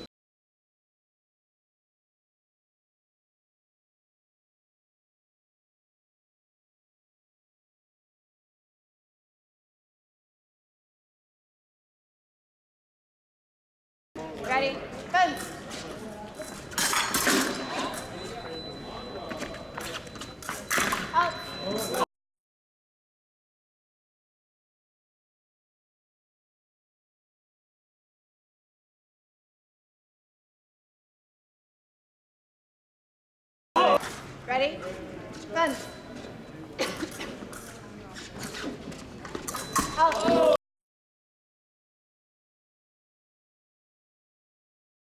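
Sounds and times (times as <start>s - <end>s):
voices in a hall: 14.2s - 22.1s, 33.8s - 40.6s
fencing blades clashing: 16.4s - 18.4s, 19.8s - 22.0s, 36.8s - 40.6s.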